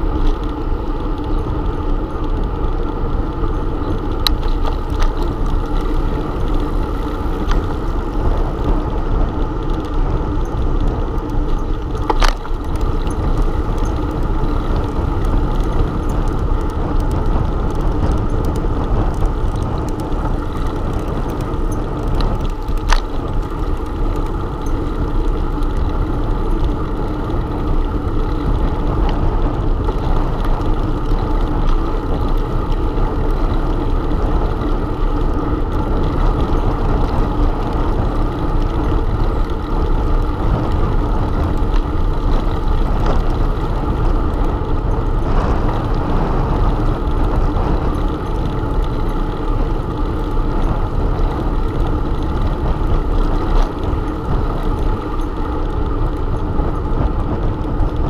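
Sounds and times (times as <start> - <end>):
bicycle tyre noise: 0.0 - 58.0
wind buffeting microphone: 0.0 - 58.0.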